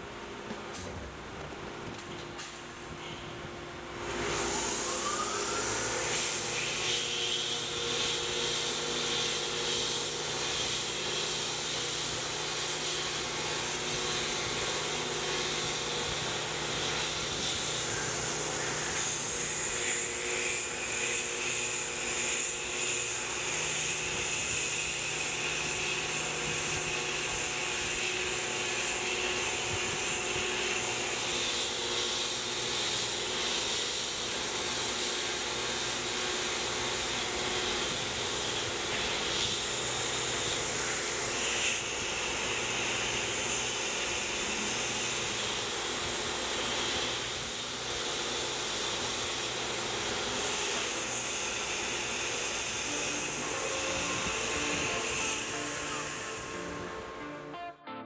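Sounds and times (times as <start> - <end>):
mill spindle cutting metal: 4.0 - 57.2
coolant spray hiss: 7.8 - 20.1.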